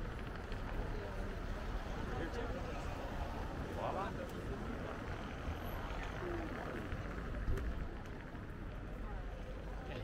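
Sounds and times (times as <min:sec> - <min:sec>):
faint voices of passers-by: 0:00.0 - 0:10.0
low street rumble: 0:00.0 - 0:10.0.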